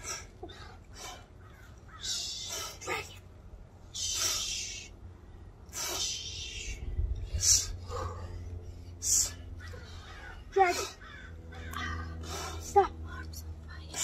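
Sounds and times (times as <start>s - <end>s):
sharp hissing exhaled breaths: 2.0s - 3.1s, 3.8s - 5.0s, 5.6s - 11.0s
low rumble: 3.1s - 14.0s.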